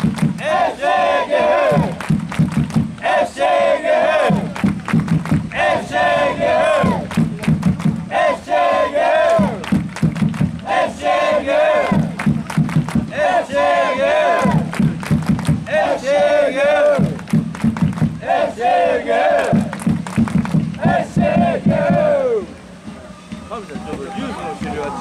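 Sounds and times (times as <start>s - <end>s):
people clapping: 0.0s - 22.3s
rhythmic drumming: 0.0s - 25.0s
supporters chanting in unison: 0.3s - 2.1s, 3.0s - 4.7s, 5.3s - 7.2s, 7.9s - 9.8s, 10.6s - 12.4s, 13.0s - 15.0s, 15.6s - 17.3s, 18.2s - 19.8s, 20.7s - 22.6s.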